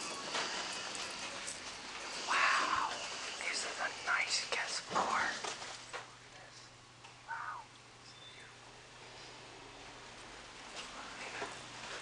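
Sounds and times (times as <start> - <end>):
person whispering: 2.3 - 5.4, 7.3 - 7.7, 10.9 - 11.6.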